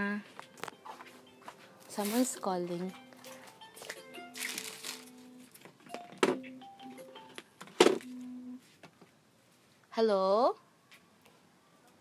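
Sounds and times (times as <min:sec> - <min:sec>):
mobile phone ringtone: 0:02.8 - 0:07.4, 0:08.0 - 0:08.6.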